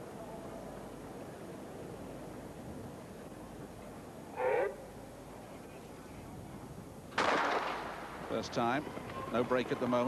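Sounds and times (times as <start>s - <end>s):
stadium ambience: 0.0s - 10.0s.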